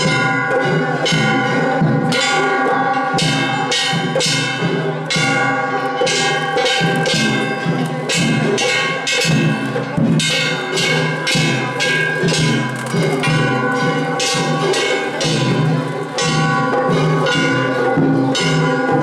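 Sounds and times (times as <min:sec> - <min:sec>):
taiko drums beating: 0:00.0 - 0:19.0.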